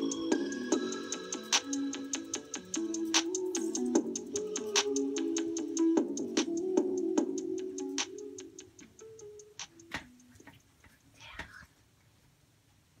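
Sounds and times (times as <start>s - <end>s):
pop song from record player: 0.0s - 10.5s.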